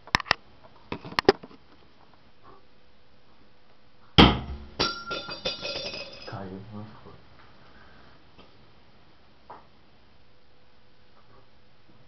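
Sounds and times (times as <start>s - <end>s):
metal star hitting wooden door: 4.2s - 6.2s
metal clattering on floor: 4.8s - 6.4s.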